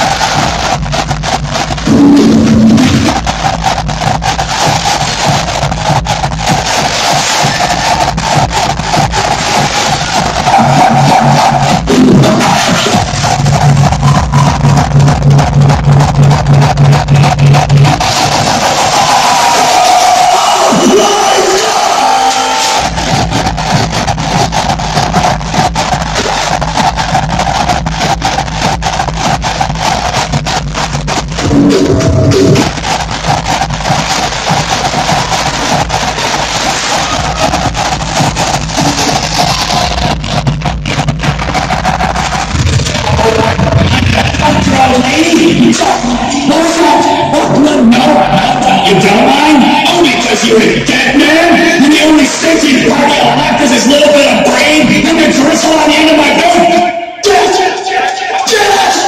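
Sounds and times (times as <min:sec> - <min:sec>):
distorted kick drum: 0:00.0 - 0:21.9, 0:22.7 - 0:57.5
hardcore electronic music: 0:00.0 - 0:59.0.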